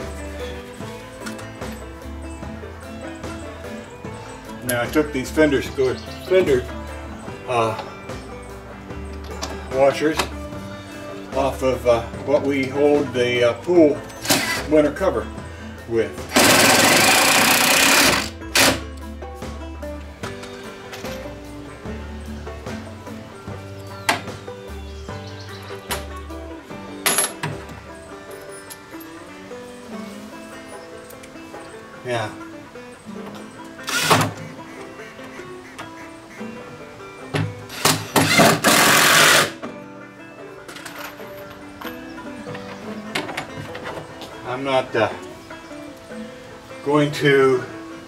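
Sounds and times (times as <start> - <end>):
background music: 0.0 - 48.0
cordless drill driving screws: 14.2 - 14.7, 16.3 - 18.8, 33.8 - 34.3, 37.7 - 39.6.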